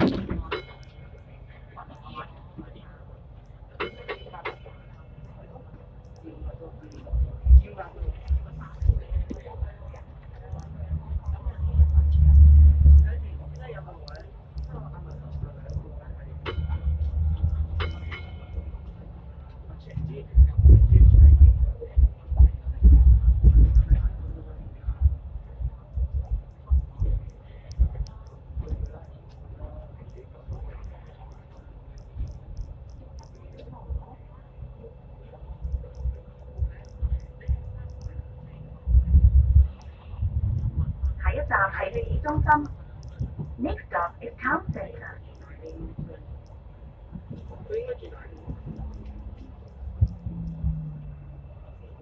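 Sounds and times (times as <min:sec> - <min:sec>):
tram rumbling: 0:00.0 - 0:52.0.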